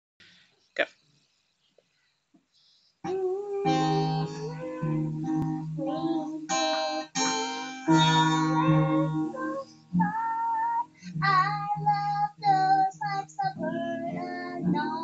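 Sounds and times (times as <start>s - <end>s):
acoustic guitar strumming: 3.1s - 15.0s
child singing: 3.1s - 15.0s.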